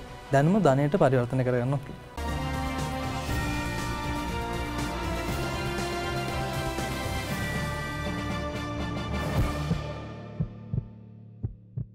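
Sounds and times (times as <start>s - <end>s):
tv theme music: 0.0s - 11.7s
low double thumps: 9.4s - 11.9s.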